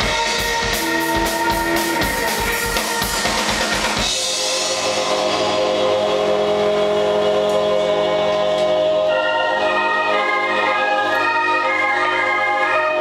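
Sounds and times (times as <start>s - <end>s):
higher sustained notes: 0.0s - 13.0s
organ held chord: 4.0s - 13.0s.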